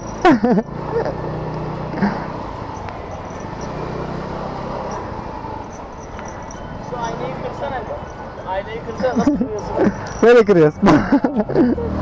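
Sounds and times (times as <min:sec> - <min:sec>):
road and wind noise: 0:00.0 - 0:12.0
scooter engine humming: 0:00.0 - 0:12.0.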